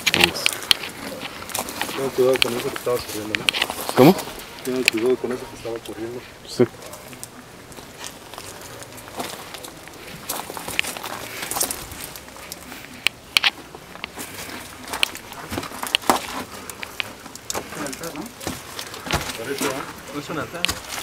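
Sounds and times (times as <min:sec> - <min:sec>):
footsteps crunching on dirt floor: 0:00.0 - 0:21.0.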